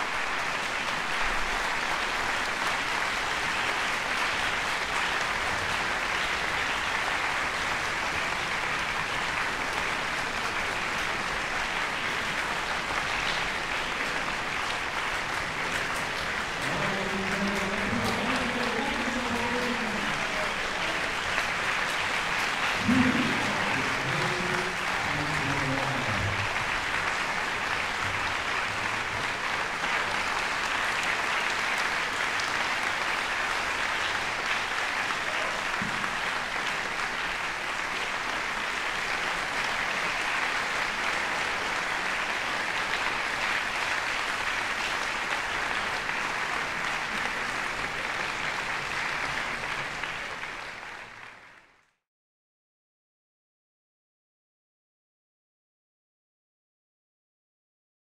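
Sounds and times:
audience applauding: 0.0 - 52.0
person speaking: 16.6 - 20.6, 22.8 - 26.5.

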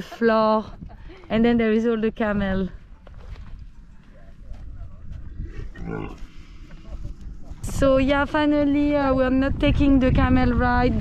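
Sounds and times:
camel grumbling: 5.3 - 6.6.

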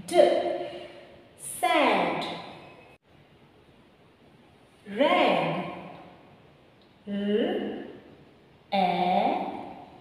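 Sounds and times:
woman speaking: 0.0 - 2.5, 4.9 - 5.9, 7.0 - 8.0, 8.7 - 9.9
faint room hiss: 0.0 - 10.0.

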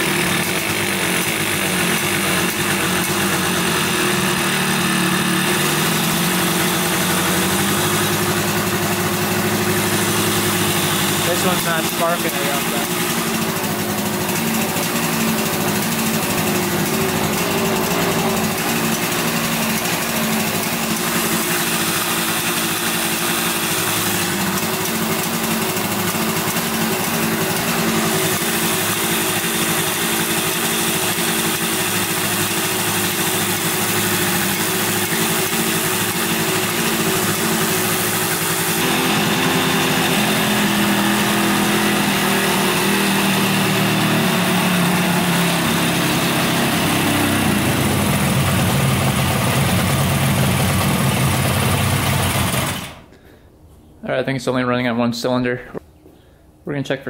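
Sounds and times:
two-stroke motorcycle engine idling: 0.0 - 53.1.

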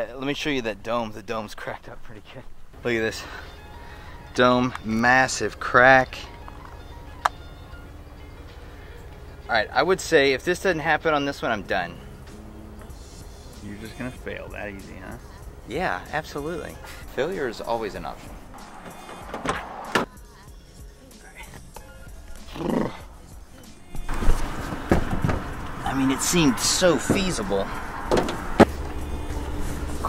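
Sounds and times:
background music: 2.7 - 30.0
truck door opening and shutting: 4.2 - 9.2, 15.0 - 20.2, 21.6 - 30.0.

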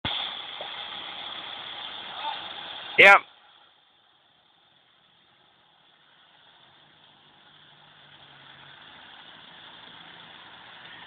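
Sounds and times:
recording hiss: 0.0 - 11.0
engines droning: 4.9 - 11.0.

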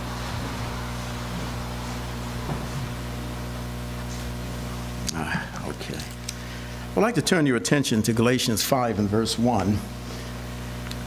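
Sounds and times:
electrical hum and hiss: 0.0 - 11.0.

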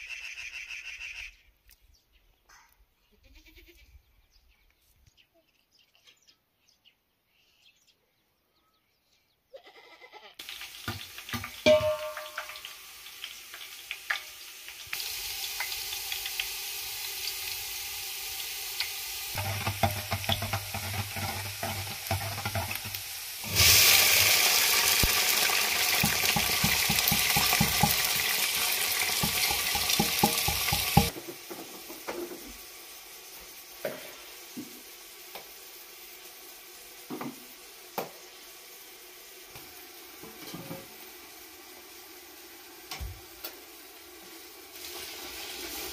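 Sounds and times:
frying hiss: 10.4 - 45.9
rice sizzling in hot oil: 10.4 - 45.9
metal pots knocking and clinking: 10.8 - 12.8, 19.4 - 23.7, 25.9 - 32.4.

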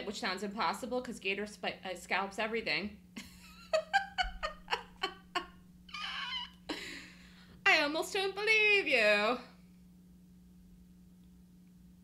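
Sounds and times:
woman laughing: 3.2 - 7.2.

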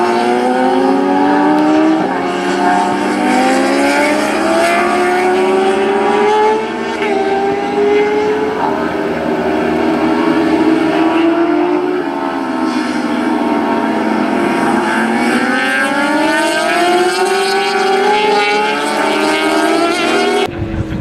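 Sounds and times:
motorcycle engines racing: 0.0 - 21.0.

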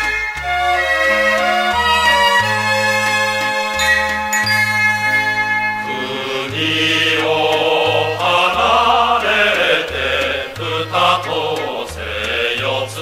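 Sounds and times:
bell-like tones: 3.8 - 6.8
mixed choir singing: 5.8 - 13.0.

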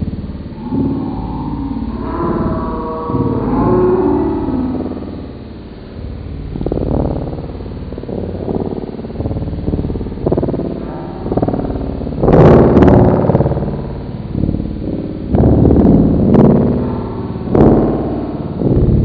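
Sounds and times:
distorted electronic music: 0.0 - 19.0.

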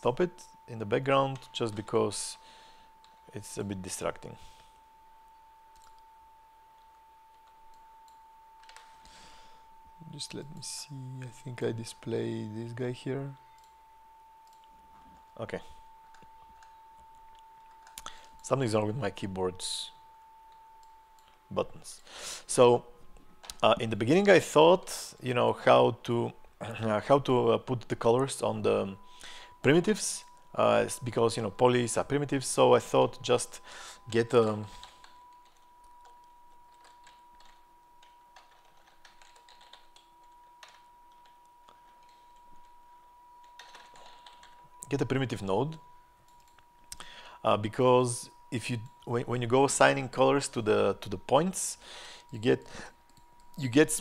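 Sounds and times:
faint high-pitched whine: 0.0 - 54.0
keyboard keys clicking: 34.8 - 42.7, 43.4 - 44.6.

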